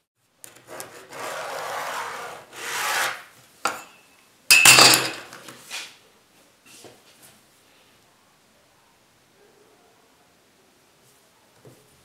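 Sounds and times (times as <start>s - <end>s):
pen scraping on board: 0.5s - 3.2s.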